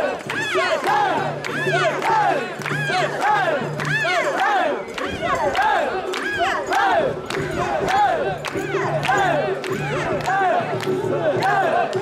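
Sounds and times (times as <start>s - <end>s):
crowd chanting in rhythm: 0.0s - 12.0s.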